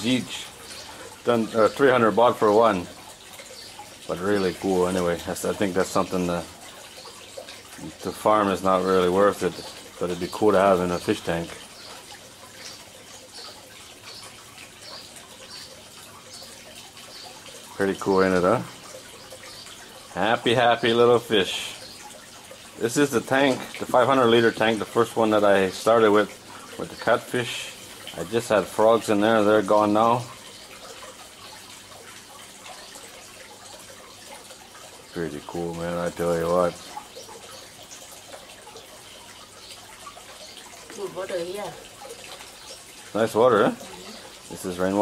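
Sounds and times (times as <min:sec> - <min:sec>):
water sloshing and trickling: 0:00.0 - 0:45.0.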